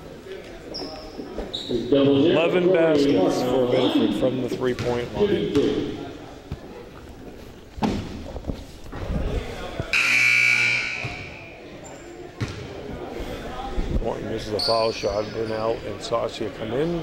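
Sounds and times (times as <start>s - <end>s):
scoreboard buzzer: 9.9s - 11.4s.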